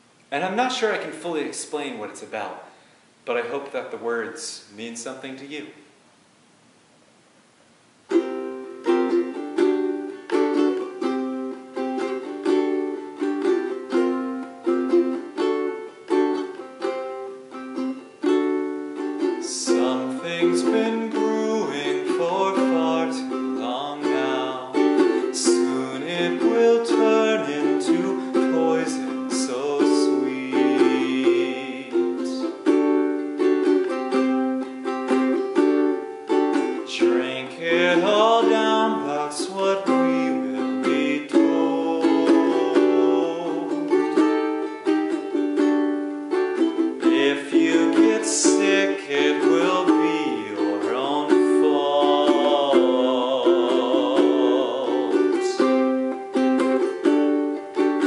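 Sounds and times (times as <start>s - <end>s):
ukulele strumming: 0.0s - 2.6s, 8.0s - 58.0s
man singing: 19.2s - 32.8s, 36.3s - 45.0s, 46.6s - 55.9s.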